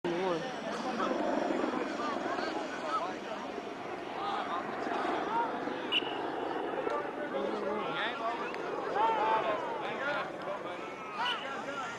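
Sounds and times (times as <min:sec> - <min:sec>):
people talking: 0:00.0 - 0:11.9
helicopter flying overhead: 0:00.1 - 0:11.9.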